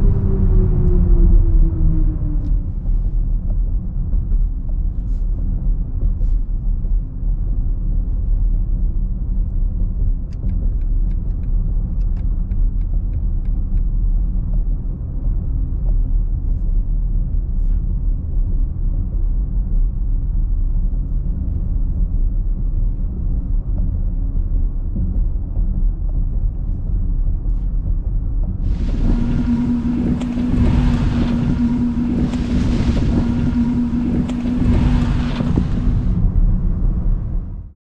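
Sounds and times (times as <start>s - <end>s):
road and tyre rumble in car cabin: 0.0s - 37.7s.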